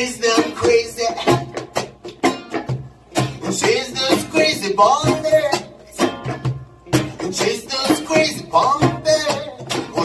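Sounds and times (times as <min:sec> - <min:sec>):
acoustic guitar reggae strumming: 0:00.0 - 0:10.0.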